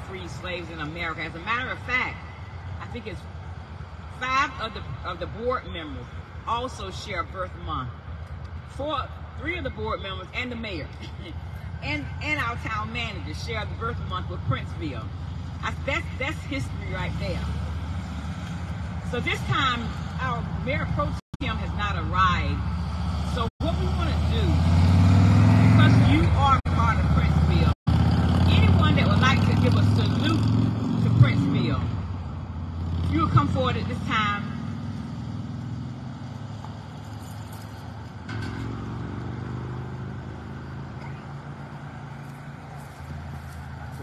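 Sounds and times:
people talking: 0.0s - 2.2s, 2.8s - 3.2s, 4.2s - 7.9s, 8.8s - 17.5s, 19.1s - 22.6s, 23.4s - 24.6s, 25.8s - 27.8s, 28.4s - 31.9s, 33.1s - 34.5s
vehicle engine passing by: 16.7s - 21.2s, 22.4s - 44.0s.

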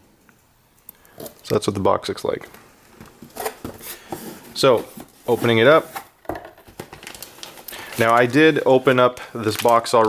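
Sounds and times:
plastic packaging crinkling: 3.2s - 10.0s.

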